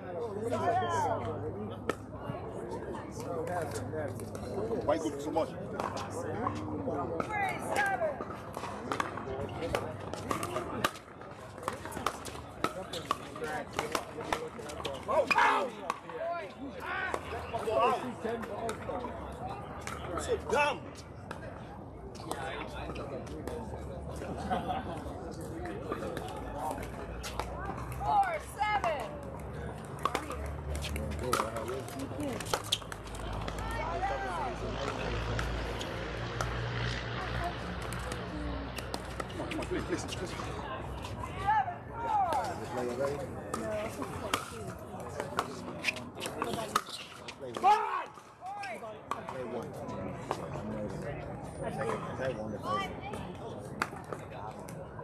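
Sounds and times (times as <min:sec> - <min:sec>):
people's voices: 0:00.0 - 0:55.0.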